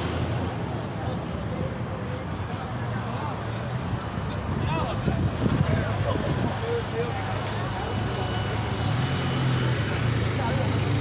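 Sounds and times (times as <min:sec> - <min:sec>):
crowd chatter: 0:00.0 - 0:11.0
vehicle engine humming: 0:00.0 - 0:11.0.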